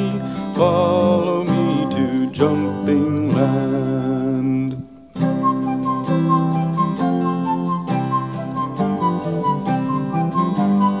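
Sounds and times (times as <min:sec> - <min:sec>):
plucked strings melody: 0:00.0 - 0:11.0.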